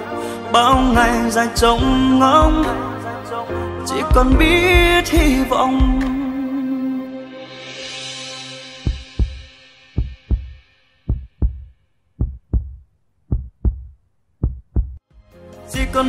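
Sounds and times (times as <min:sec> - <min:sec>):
song with singing: 0:00.0 - 0:09.0, 0:15.6 - 0:16.0
heartbeat thumps: 0:04.1 - 0:06.2, 0:08.9 - 0:15.0.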